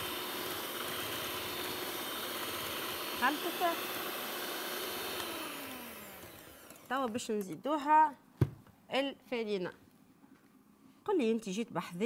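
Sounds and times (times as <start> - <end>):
electric hand mixer: 0.0 - 7.2.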